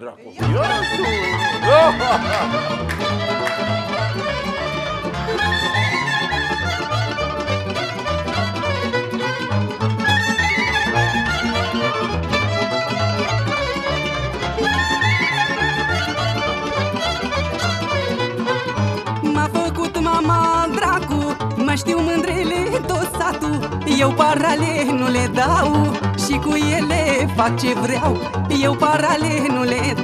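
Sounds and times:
steady bass beat: 0:00.4 - 0:02.6
accordion: 0:00.4 - 0:30.0
violin melody: 0:00.4 - 0:30.0.

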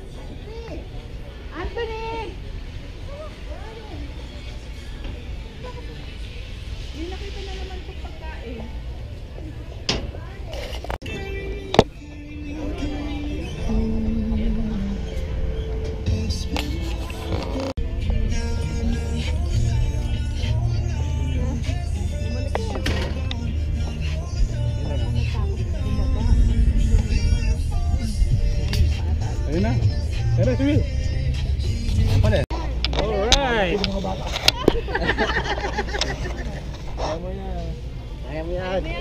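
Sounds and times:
background music with bass line: 0:11.0 - 0:32.4.

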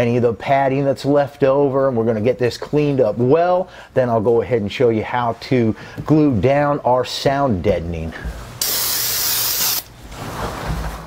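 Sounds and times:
aerosol spray can hissing: 0:08.6 - 0:09.9.

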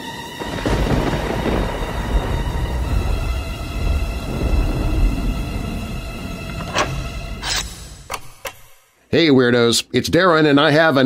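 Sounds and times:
music of steady held tones: 0:00.0 - 0:09.1
thunder crash rumbling: 0:00.3 - 0:07.4.

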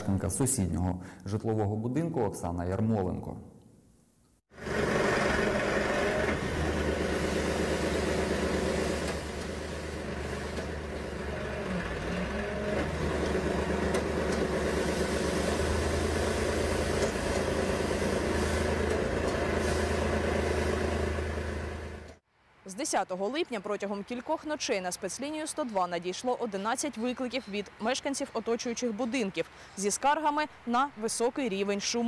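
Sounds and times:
diesel engine droning: 0:04.6 - 0:22.2.

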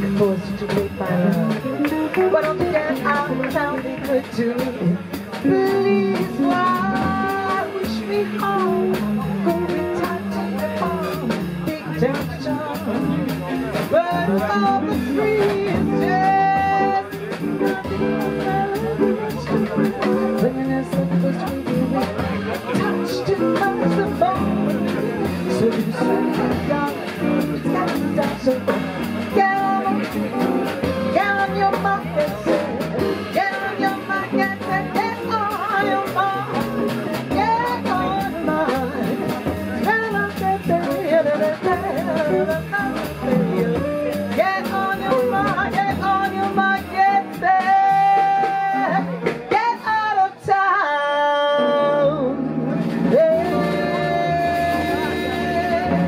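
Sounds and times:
jazz band with drums and keyboard: 0:00.0 - 0:56.0
woman singing: 0:00.0 - 0:56.0.

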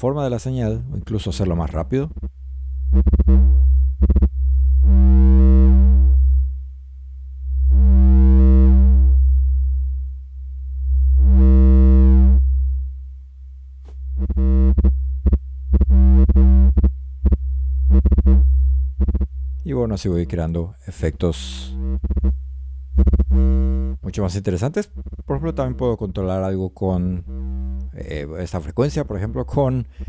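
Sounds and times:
deep synth bass tone: 0:00.6 - 0:30.0
bright distorted synth layer pulsing: 0:01.6 - 0:06.6, 0:14.1 - 0:19.7, 0:21.4 - 0:28.3.

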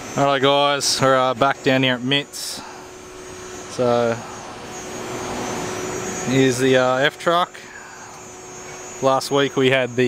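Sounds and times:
air conditioner fan noise: 0:00.0 - 0:10.0.

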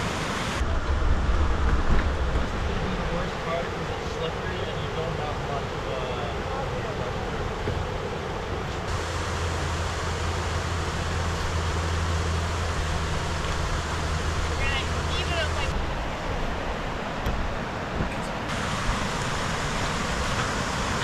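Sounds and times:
white-water creek rushing: 0:00.0 - 0:01.6, 0:02.5 - 0:21.0
low steady hum: 0:00.0 - 0:21.0.

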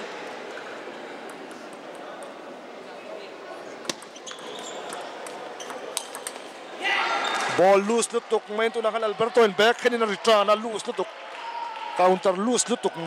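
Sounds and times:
low murmur in a hall: 0:00.0 - 0:13.0
table tennis ball clicks: 0:03.8 - 0:04.2, 0:04.8 - 0:06.5.

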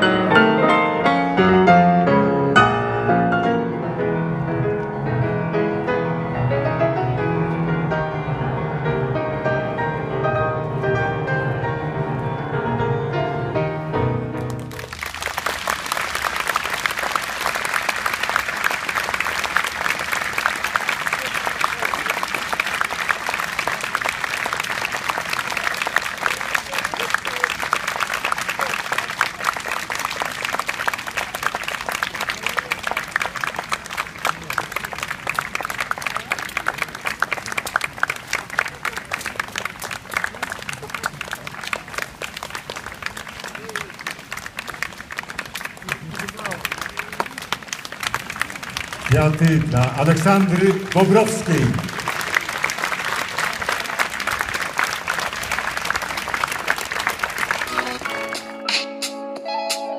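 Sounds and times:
audience applauding: 0:14.3 - 0:58.8.

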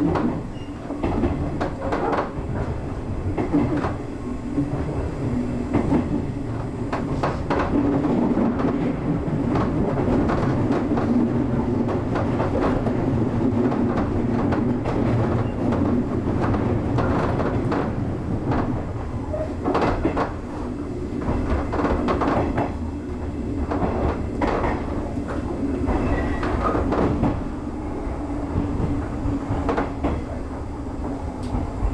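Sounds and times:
electric train rumbling: 0:00.0 - 0:31.9.

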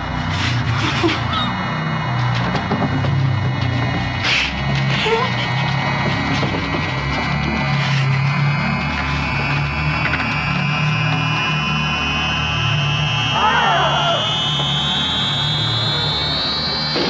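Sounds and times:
low drone: 0:00.0 - 0:17.0
high electronic whine: 0:05.6 - 0:17.0.

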